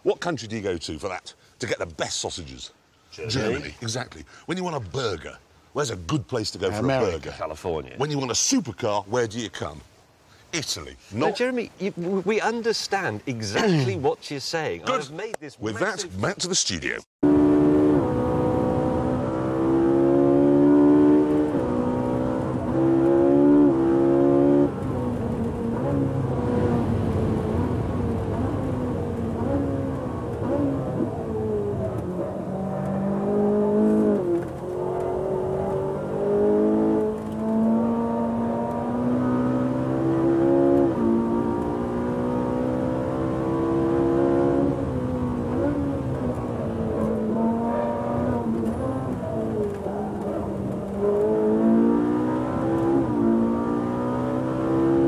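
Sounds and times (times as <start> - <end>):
supercar engine revving: 17.2 - 55.0.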